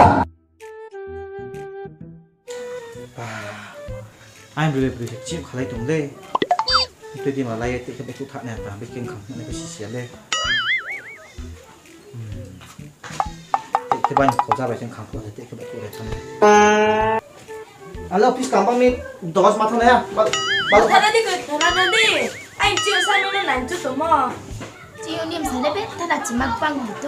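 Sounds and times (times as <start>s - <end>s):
background music with soft beat: 2.5s - 27.0s
warbling comedy sound effect: 6.4s - 6.9s, 10.4s - 11.3s, 20.4s - 23.3s
wobbling high electronic tone: 6.4s - 6.9s, 10.4s - 11.3s, 20.4s - 23.3s
faint mumbled speech: 11.2s - 12.6s
woman talking: 20.8s - 24.4s.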